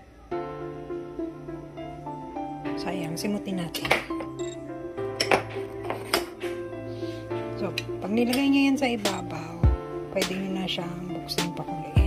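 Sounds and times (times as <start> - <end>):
background music: 0.1 - 12.0.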